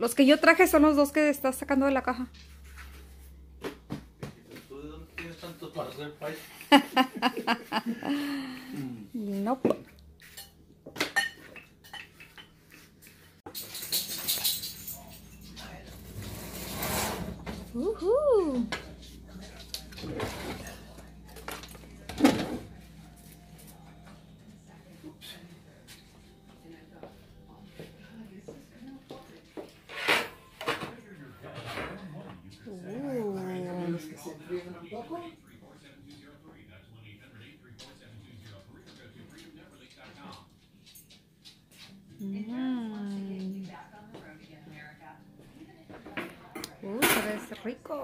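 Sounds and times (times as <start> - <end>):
dishes and tins clinking: 9.7 - 16.6, 29.6 - 32.2, 46.0 - 47.8
dishes scraping on racks: 13.5 - 17.8, 19.9 - 21.0, 29.8 - 31.0.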